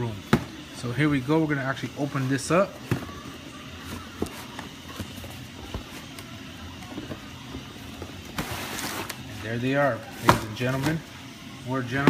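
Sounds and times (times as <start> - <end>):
household background noise: 0.0 - 12.0
tissue paper rustling: 8.4 - 9.5.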